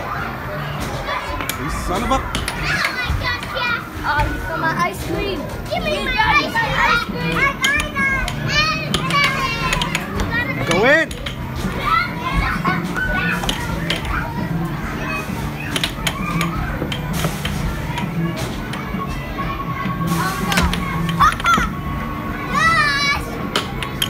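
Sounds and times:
children's voices: 0.0 - 24.0
air hockey puck clacking: 2.3 - 3.5, 7.6 - 11.9, 20.6 - 21.7, 23.5 - 24.0.

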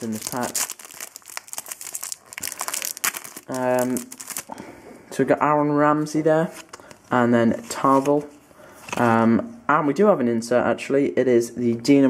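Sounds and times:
foil wrapper crinkling and tearing: 0.0 - 4.5.

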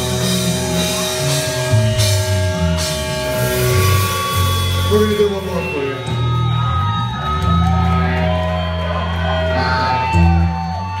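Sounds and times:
rock band playing: 0.0 - 11.0.

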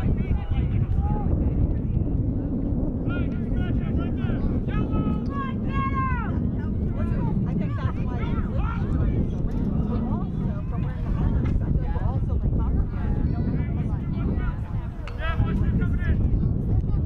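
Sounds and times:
wind buffeting microphone: 0.0 - 17.0
distant voices shouting: 3.0 - 11.1.

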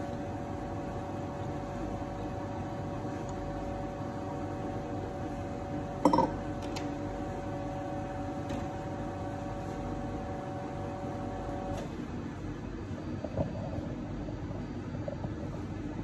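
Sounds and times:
espresso machine pump humming: 0.0 - 12.2.

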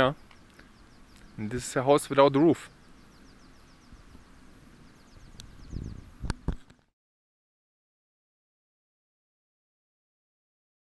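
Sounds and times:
rapid repeating chirping: 0.0 - 6.1
faint open-air ambience: 0.0 - 7.0.

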